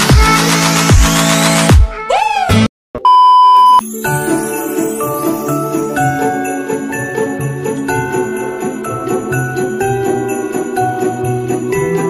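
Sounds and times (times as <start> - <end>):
test-tone beep: 3.0 - 3.8
christmas music with jingle bells: 3.8 - 12.0.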